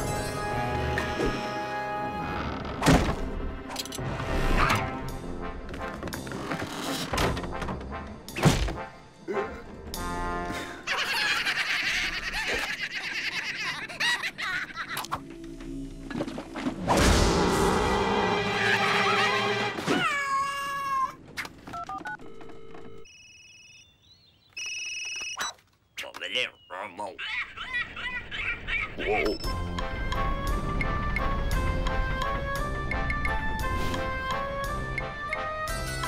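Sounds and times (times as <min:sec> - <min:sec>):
background music: 0:00.0 - 0:12.8, 0:13.6 - 0:20.0, 0:29.0 - 0:36.0
loud crash: 0:16.8 - 0:18.7
telephone dialing tones: 0:21.7 - 0:23.1.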